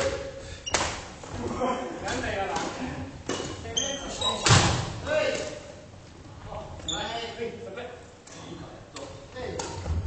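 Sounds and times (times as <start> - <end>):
racket hitting shuttlecock: 9.0 - 10.0.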